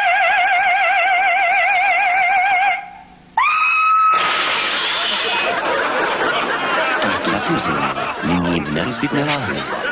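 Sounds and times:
people screaming and laughing: 0:03.4 - 0:08.3.

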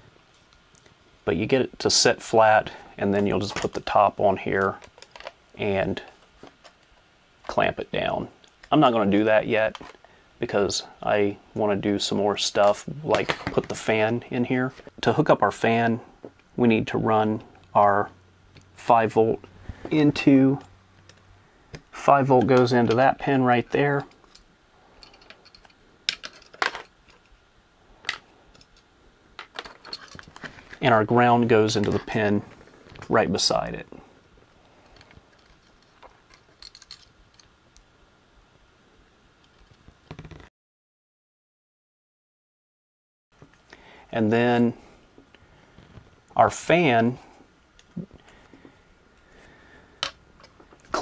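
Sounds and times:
plastic parts handling: 0:04.6 - 0:05.4, 0:25.0 - 0:27.3, 0:28.0 - 0:30.8, 0:34.8 - 0:37.5.

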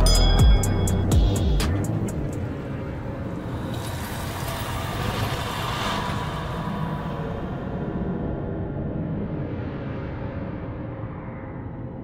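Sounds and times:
rumbling wind-like noise: 0:01.9 - 0:12.0.

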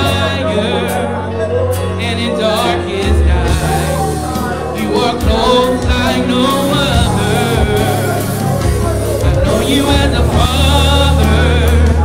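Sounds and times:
live gospel worship music: 0:00.0 - 0:12.0.

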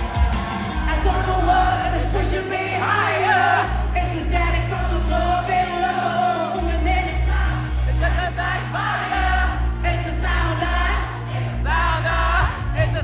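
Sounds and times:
band with heavy bass line: 0:00.0 - 0:13.0.

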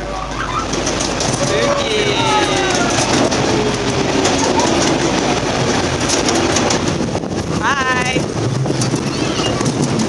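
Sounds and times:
train wheels rumbling on rail: 0:00.0 - 0:10.0.

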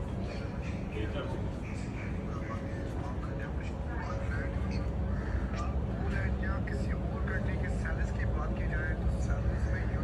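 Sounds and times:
low rumble of traffic: 0:00.0 - 0:10.0
people talking indistinctly: 0:00.0 - 0:10.0.

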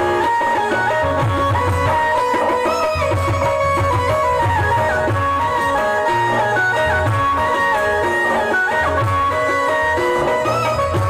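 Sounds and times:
melody instrument with sliding notes: 0:00.0 - 0:11.0.

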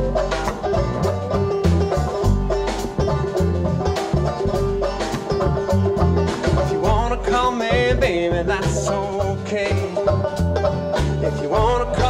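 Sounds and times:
drum kit steady beat: 0:00.0 - 0:12.0
guitar: 0:00.0 - 0:12.0
upright bass: 0:00.0 - 0:12.0.

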